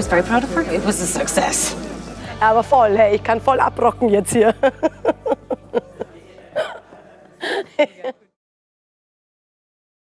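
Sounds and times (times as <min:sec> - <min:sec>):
woman laughing: 0:04.3 - 0:08.4.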